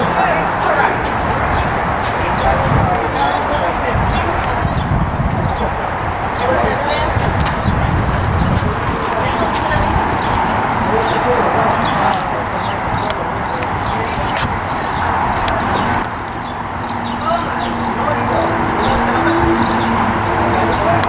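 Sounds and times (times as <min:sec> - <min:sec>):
indistinct voices: 0:00.0 - 0:21.0
horse hoofbeats on dirt: 0:06.1 - 0:12.2.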